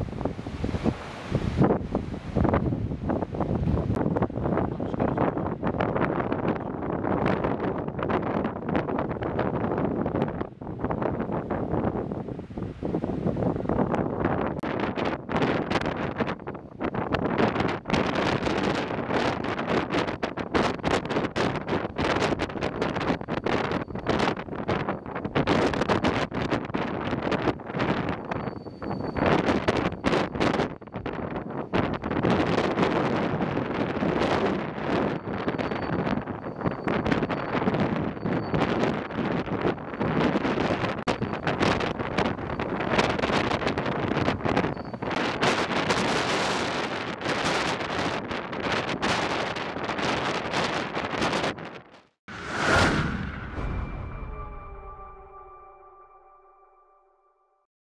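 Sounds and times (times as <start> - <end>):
wind buffeting microphone: 0.0 - 54.9.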